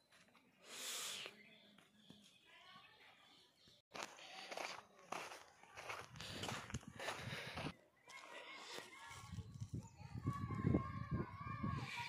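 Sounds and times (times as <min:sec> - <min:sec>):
footsteps on leaves and twigs: 0:03.9 - 0:09.8.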